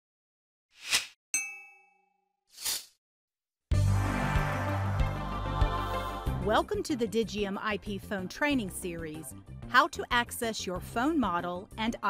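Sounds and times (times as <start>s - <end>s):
metallic bell-like ding: 1.4s - 2.2s.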